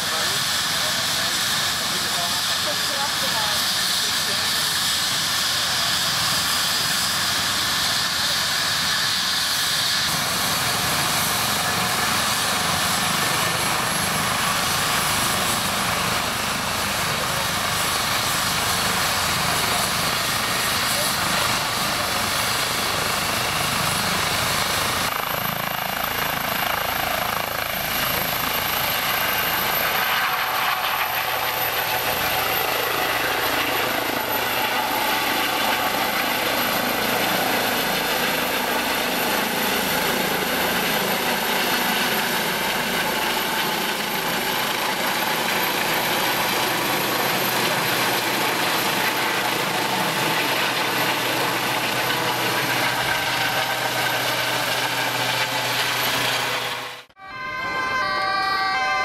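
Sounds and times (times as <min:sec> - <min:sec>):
helicopter rotor noise: 0:00.0 - 0:59.0
helicopter turbine whine: 0:00.0 - 0:59.0.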